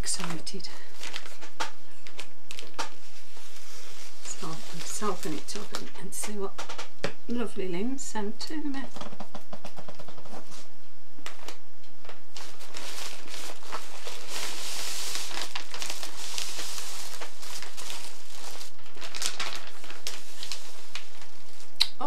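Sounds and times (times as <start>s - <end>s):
plastic mailing bag rustling: 0.0s - 6.9s, 8.9s - 10.7s, 11.3s - 21.8s.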